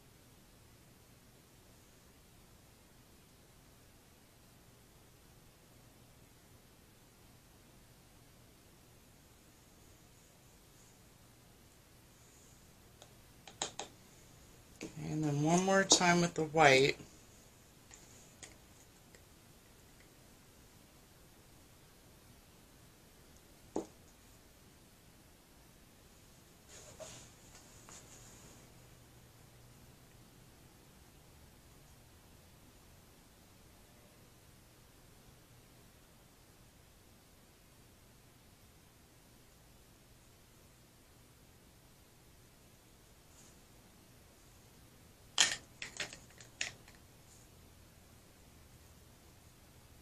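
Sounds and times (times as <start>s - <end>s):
faint room hiss: 0.0s - 50.0s.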